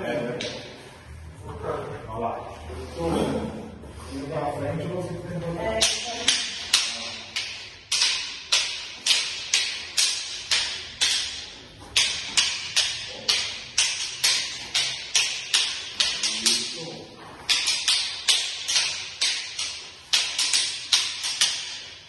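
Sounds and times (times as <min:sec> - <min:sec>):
fighting sticks clacking: 0:05.6 - 0:22.0.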